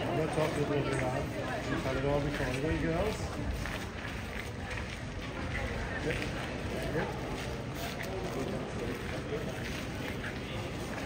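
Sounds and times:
footsteps on stone paving: 0.0 - 11.0
murmur of crowd chatter: 0.0 - 11.0.

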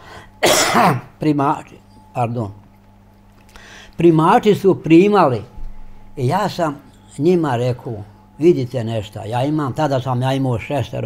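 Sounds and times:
man clearing his throat: 0.4 - 1.2
man coughing: 0.4 - 1.2.

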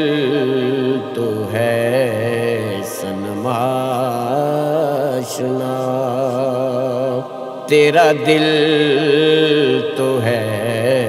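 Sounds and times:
low vocal drone: 0.0 - 11.0
man singing long wavering notes: 0.0 - 11.0.

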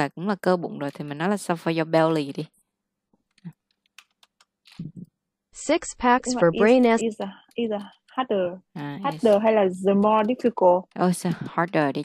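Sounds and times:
computer keyboard key presses: 3.8 - 4.5.

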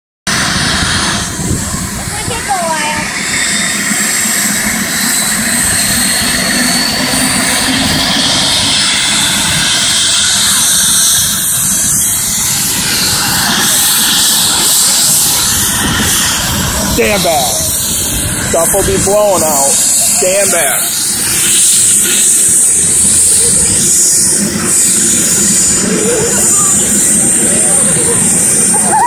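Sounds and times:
helicopter rotor noise: 0.3 - 29.0
helicopter turbine whine: 0.3 - 29.0.

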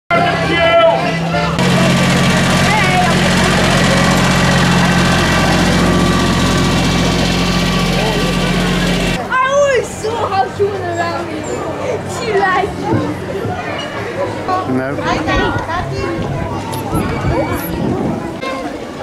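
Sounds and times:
road train engine running: 0.1 - 9.3
high voices: 0.2 - 18.3.

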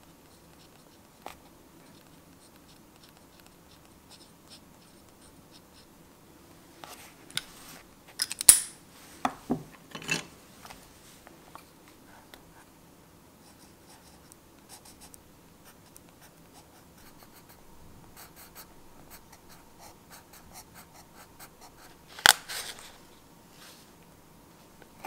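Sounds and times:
pencil scratching on paper: 0.3 - 5.9.

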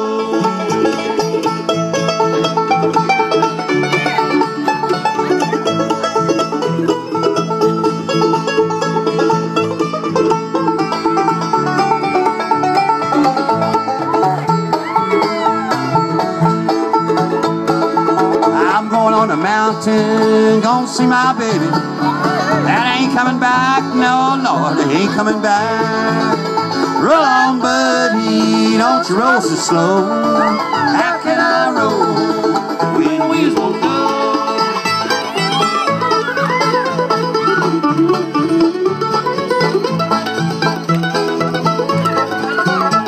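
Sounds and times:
acoustic guitar: 0.0 - 43.0
banjo: 0.0 - 43.0
fiddle: 0.0 - 43.0
mandolin: 0.0 - 43.0
upright bass: 0.0 - 43.0.

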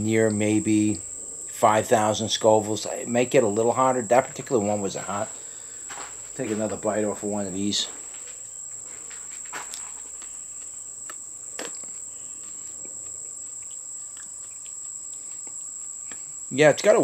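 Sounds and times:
high-pitched insect trill: 0.0 - 17.0
chilli pepper crunching: 9.6 - 16.3.

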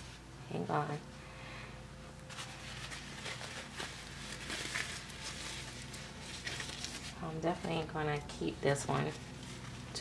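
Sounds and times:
diaper rustling and crinkling: 2.3 - 10.0.

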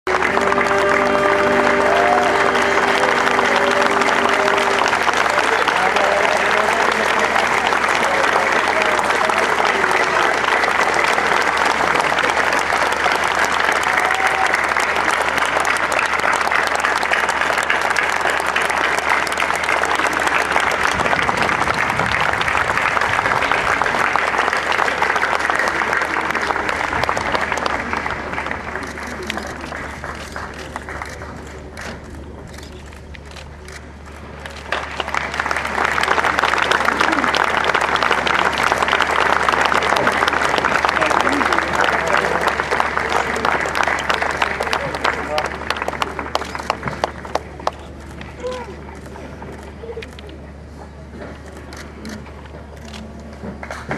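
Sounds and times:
large crowd applauding: 0.0 - 53.9.

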